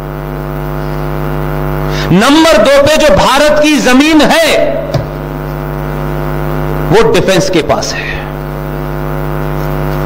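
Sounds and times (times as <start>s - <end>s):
electrical mains hum: 0.0s - 10.0s.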